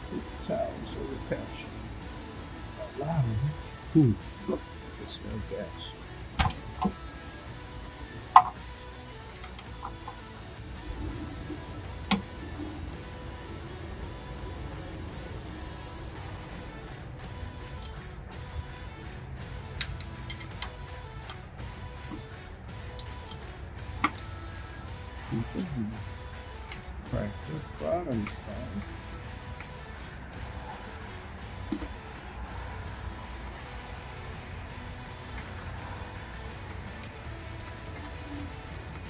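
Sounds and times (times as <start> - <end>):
background music: 0.0 - 39.0
wrench clicking on metal fittings: 19.7 - 21.4.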